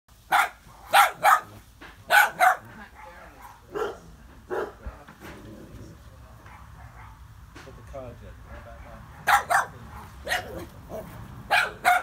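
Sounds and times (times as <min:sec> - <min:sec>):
dog barking: 0:00.3 - 0:04.8, 0:06.5 - 0:07.2, 0:09.2 - 0:12.0.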